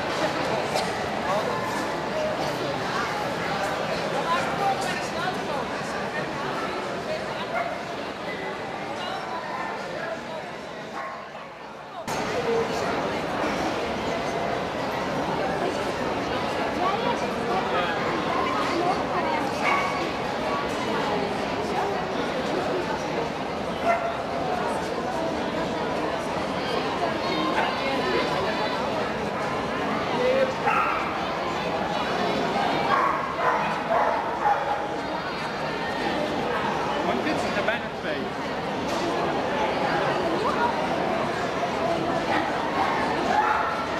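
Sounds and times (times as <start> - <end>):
crowd chatter in hall: 0.0 - 43.9
people talking: 0.0 - 43.9
dog barking: 32.9 - 34.9.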